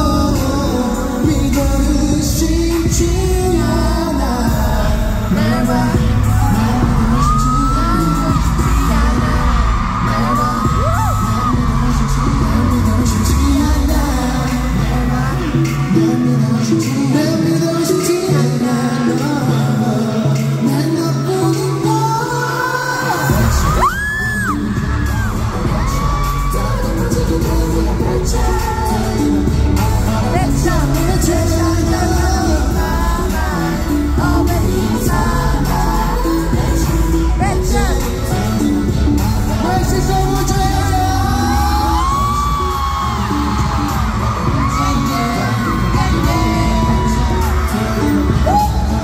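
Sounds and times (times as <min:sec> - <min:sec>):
heavy bass beat: 0:00.0 - 0:17.7, 0:23.3 - 0:49.0
man singing: 0:00.0 - 0:49.0
crowd whooping: 0:06.3 - 0:15.0, 0:23.0 - 0:49.0.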